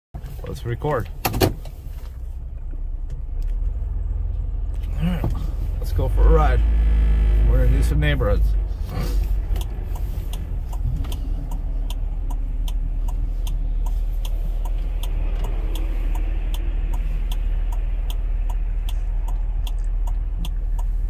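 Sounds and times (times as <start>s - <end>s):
car engine idling: 0.2s - 21.0s
turn signal ticking: 0.2s - 21.0s.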